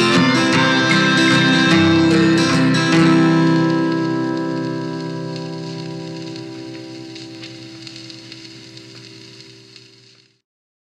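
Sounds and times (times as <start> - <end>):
acoustic guitar chord ringing: 0.0 - 9.6.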